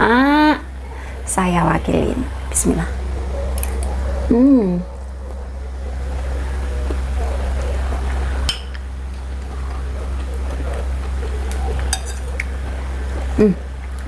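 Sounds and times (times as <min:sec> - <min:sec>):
person murmuring hmm: 0:00.0 - 0:00.7, 0:04.3 - 0:05.0, 0:13.3 - 0:13.8
steady low hum: 0:00.0 - 0:14.0
cutlery clinking on ceramic plate: 0:11.9 - 0:12.3.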